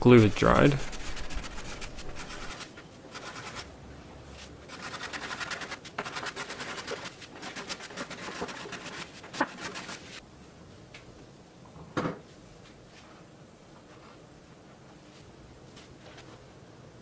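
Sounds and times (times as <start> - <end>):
card scraper scraping wood: 0.6 - 2.6, 4.7 - 10.1.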